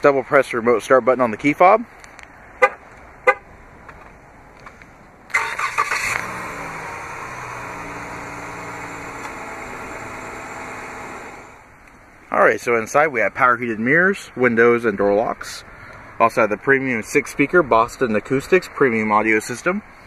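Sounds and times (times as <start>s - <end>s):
car engine starting and idling: 2.3s - 12.2s.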